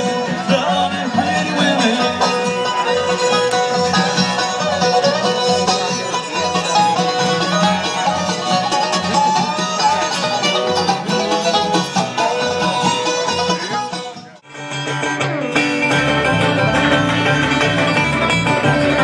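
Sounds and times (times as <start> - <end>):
live bluegrass band playing: 0.0 - 19.0.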